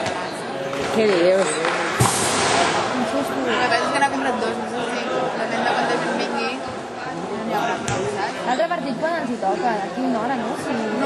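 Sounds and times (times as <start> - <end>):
chatter of voices: 0.0 - 11.0
sharp knock: 2.0 - 2.9.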